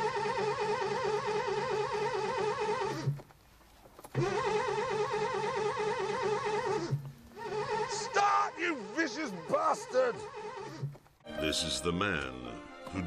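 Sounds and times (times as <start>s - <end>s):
car engine cranking on starter: 0.0s - 3.3s, 4.0s - 11.2s.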